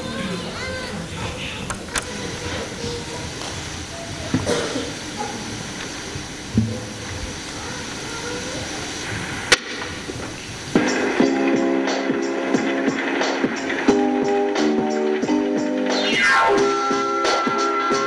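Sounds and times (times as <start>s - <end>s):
murmur of children's voices: 0.0s - 10.7s.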